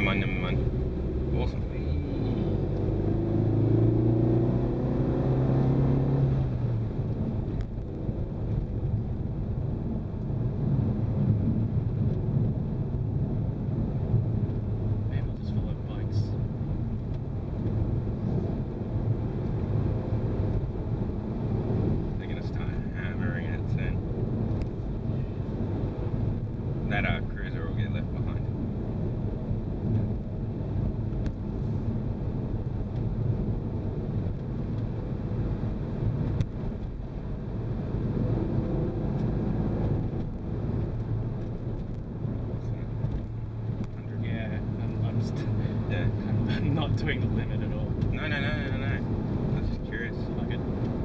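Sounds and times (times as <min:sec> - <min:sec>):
car engine accelerating: 0:00.0 - 0:15.5
road and tyre noise: 0:00.0 - 0:51.0.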